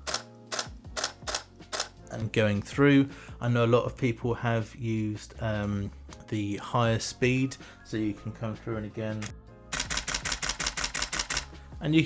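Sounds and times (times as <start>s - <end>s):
camera shutter clicks: 0.0s - 2.0s, 9.7s - 11.5s.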